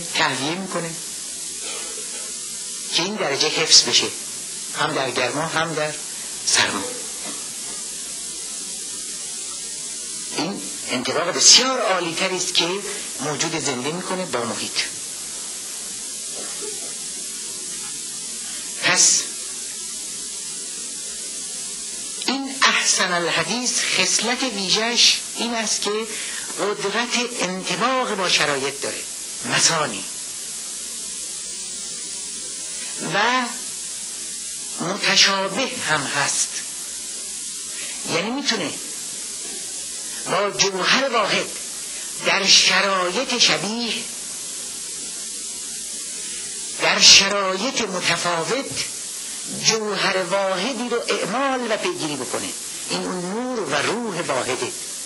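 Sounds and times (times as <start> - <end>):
man speaking: 0.0 - 1.0, 2.9 - 7.2, 10.3 - 15.0, 18.8 - 19.4, 22.3 - 30.1, 34.8 - 36.6, 38.0 - 38.9, 40.2 - 41.6, 42.2 - 44.1, 46.8 - 48.9, 49.5 - 54.8
recording hiss: 0.0 - 55.0.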